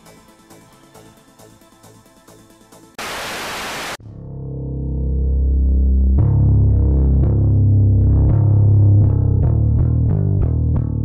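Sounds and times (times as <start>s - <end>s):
loud static hiss: 3.0s - 4.0s.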